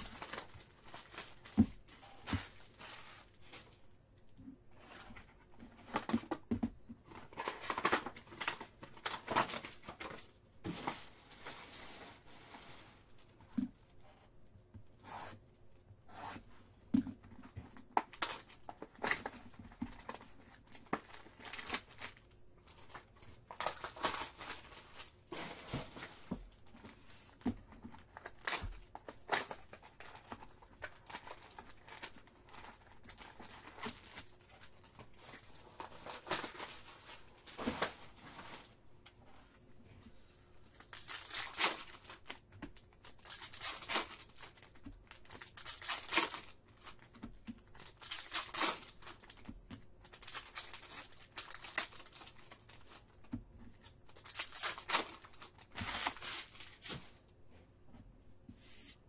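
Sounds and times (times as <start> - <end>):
foil packs crinkling: 0.0 - 3.8, 7.2 - 13.3, 17.9 - 27.0, 27.9 - 38.8, 40.7 - 53.2, 53.8 - 57.0
knife slitting plastic wrap: 40.9 - 42.3, 43.2 - 44.6, 45.3 - 46.5, 47.8 - 49.4.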